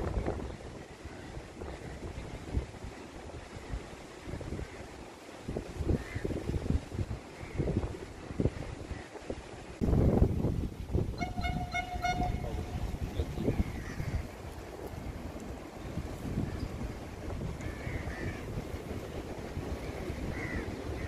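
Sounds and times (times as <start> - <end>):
wind rumble on microphone: 0.0 - 21.0
train horn: 11.1 - 13.1.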